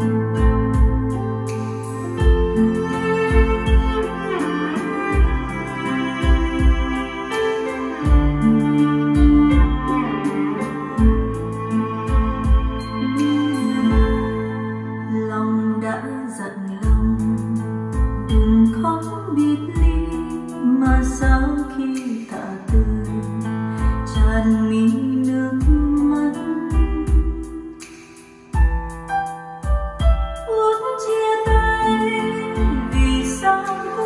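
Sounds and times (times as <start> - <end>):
deep bass beats: 0.0 - 14.7, 16.8 - 19.1, 19.7 - 21.7, 22.7 - 24.8, 25.6 - 27.7, 28.6 - 30.5, 31.5 - 34.0
instrumental music over loudspeakers: 0.0 - 34.0.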